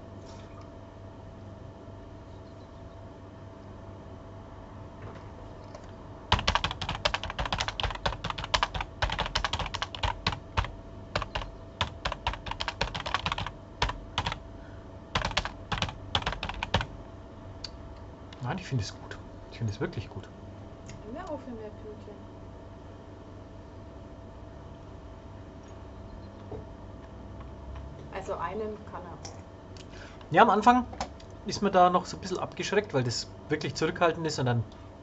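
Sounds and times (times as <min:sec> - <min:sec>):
keyboard typing: 0:05.6 - 0:14.4, 0:15.2 - 0:16.9.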